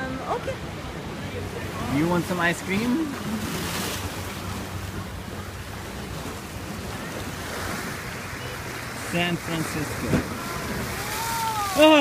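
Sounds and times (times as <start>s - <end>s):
small waves washing: 0.0s - 12.0s.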